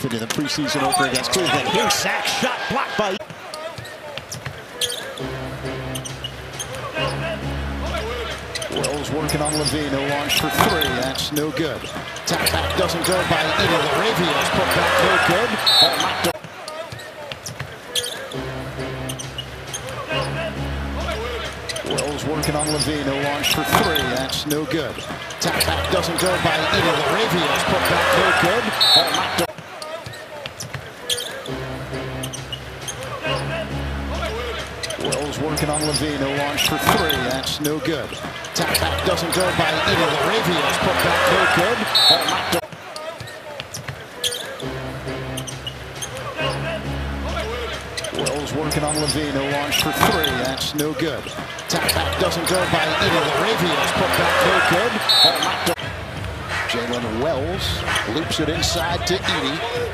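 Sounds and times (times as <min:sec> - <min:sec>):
arena background noise: 0:00.0 - 0:59.9
sneakers squeaking: 0:00.6 - 0:01.9, 0:03.2 - 0:18.4, 0:19.0 - 0:44.7, 0:45.3 - 0:55.8
arena music with low notes: 0:05.2 - 0:11.4, 0:18.3 - 0:24.6, 0:31.5 - 0:37.8, 0:44.6 - 0:50.9.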